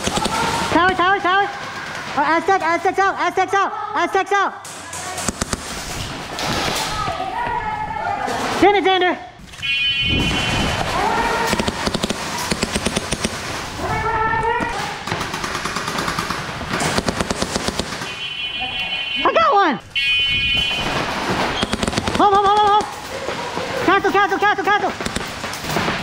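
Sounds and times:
airsoft guns firing bursts: 0:00.0 - 0:03.0, 0:04.6 - 0:06.8, 0:10.2 - 0:13.8, 0:14.7 - 0:18.3, 0:20.6 - 0:26.0
players shouting: 0:00.0 - 0:05.3, 0:10.4 - 0:15.5, 0:21.5 - 0:25.0.

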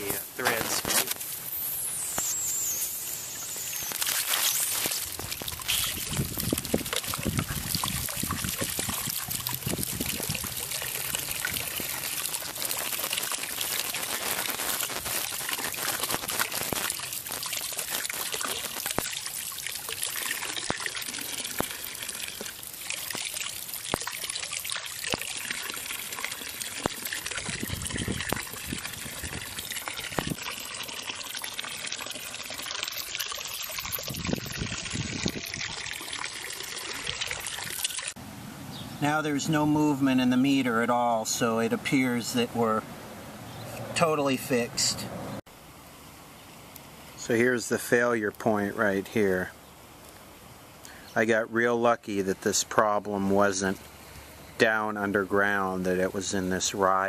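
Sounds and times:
water splashing into puddle: 0:02.0 - 0:38.2.

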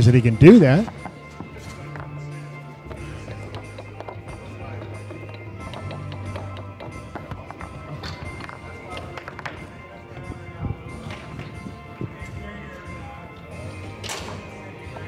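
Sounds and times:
background music: 0:00.0 - 0:15.0
foosball ball clicking: 0:02.9 - 0:09.7.

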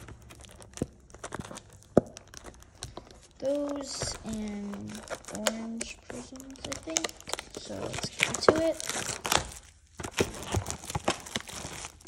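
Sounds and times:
foil pack crinkling and tearing: 0:00.0 - 0:12.0.

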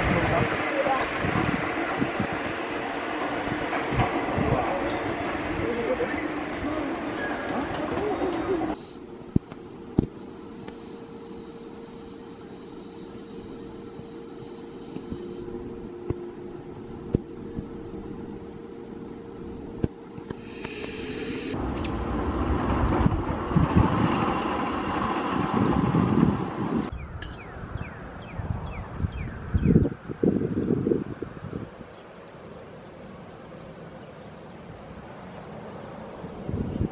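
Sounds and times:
roller coaster rattles: 0:00.0 - 0:08.8, 0:21.6 - 0:27.4
roller coaster rumbling on track: 0:00.0 - 0:09.4, 0:21.5 - 0:28.7.

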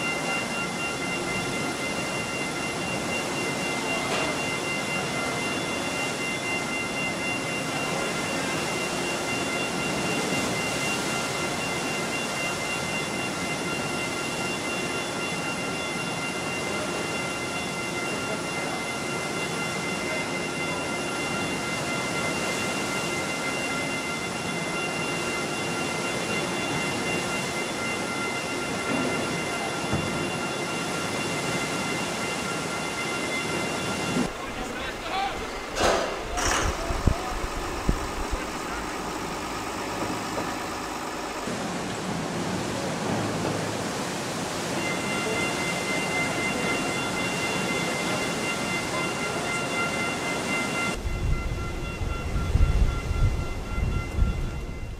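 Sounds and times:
high multi-tone whine: 0:00.0 - 0:54.9
ship machinery running: 0:00.0 - 0:54.9
wind rumble on microphone: 0:36.4 - 0:38.6, 0:51.0 - 0:54.9.

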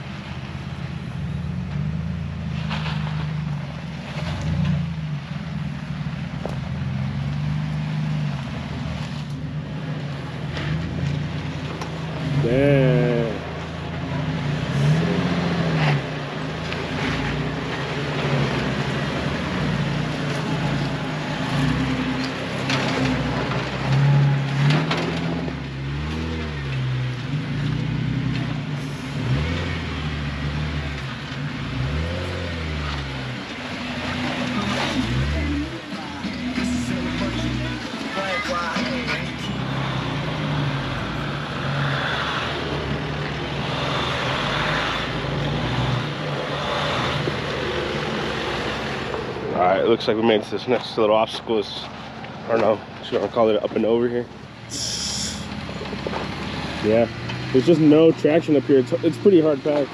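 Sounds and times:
off-road vehicle engines revving: 0:00.0 - 0:59.9.

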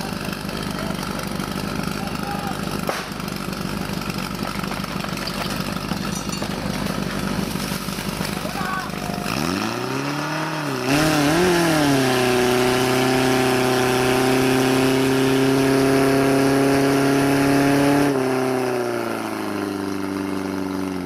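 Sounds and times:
pump engine running: 0:00.0 - 0:17.6, 0:18.2 - 0:21.0.

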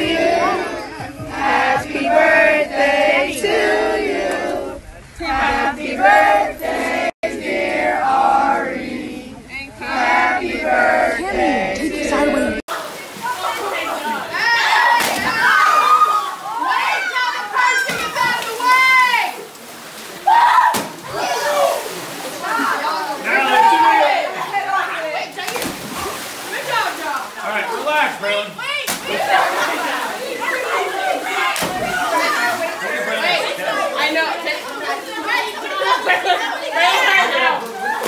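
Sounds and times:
young people chattering: 0:00.0 - 0:01.4, 0:12.0 - 0:38.0
teenagers shouting: 0:12.7 - 0:38.0.

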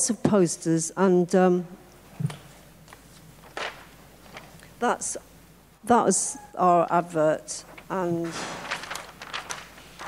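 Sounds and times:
paper poster rustling: 0:02.2 - 0:05.0, 0:07.6 - 0:10.0
person speaking: 0:04.6 - 0:09.0.

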